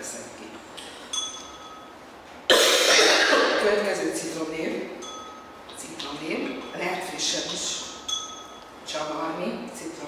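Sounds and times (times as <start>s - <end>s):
glass clinking: 0.9s - 2.0s, 5.0s - 8.8s
woman coughing loudly: 2.5s - 3.8s.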